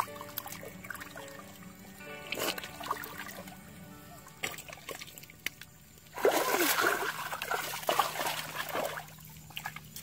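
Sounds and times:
hands splashing in muddy water: 4.4 - 10.0.

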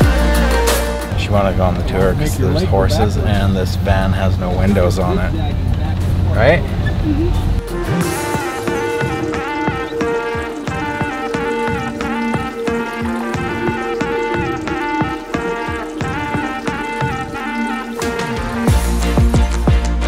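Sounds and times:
background music with beats: 0.0 - 2.7, 7.2 - 20.0
deep bass: 0.0 - 12.0, 18.3 - 20.0.

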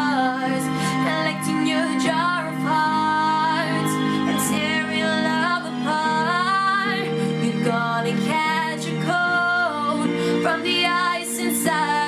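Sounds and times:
backing track music: 0.0 - 12.0
woman singing pop ballad: 0.0 - 12.0.

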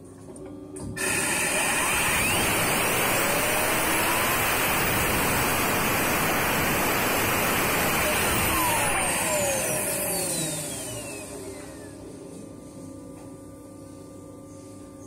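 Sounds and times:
turbocharger rotor whine: 1.0 - 12.0.

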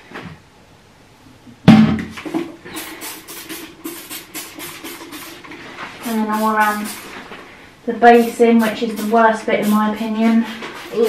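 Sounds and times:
spray bottle squirting: 2.7 - 7.3, 8.1 - 11.0.

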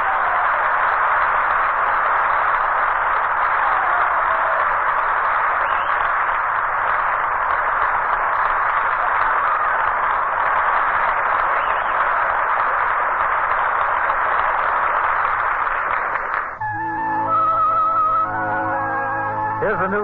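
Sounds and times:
audience applauding: 0.0 - 20.0.

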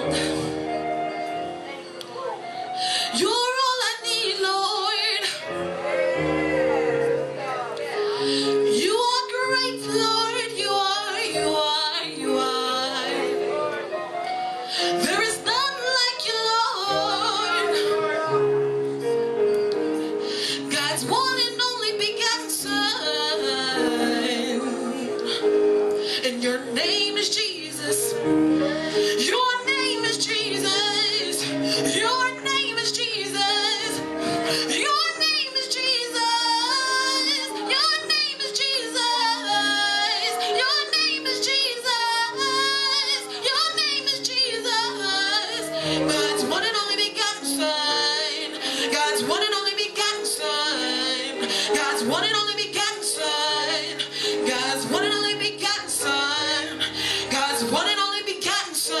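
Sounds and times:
electric keyboard: 0.0 - 59.0
woman singing with vibrato: 2.4 - 13.7, 14.7 - 18.0, 20.1 - 25.5, 26.1 - 59.0.

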